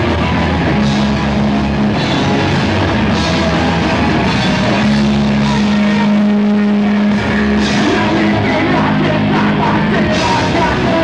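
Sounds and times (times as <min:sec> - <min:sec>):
distorted electric guitar drone: 0:00.0 - 0:11.0
punk rock band playing loudly: 0:00.0 - 0:11.0.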